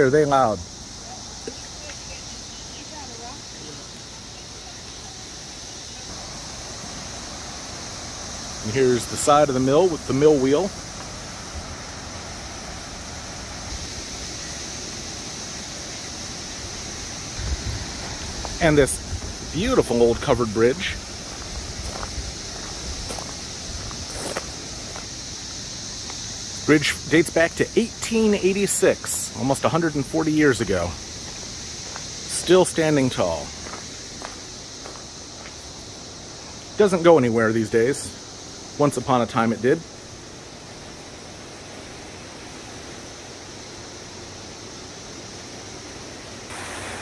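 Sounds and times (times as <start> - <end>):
cicadas buzzing: 0.0 - 47.0.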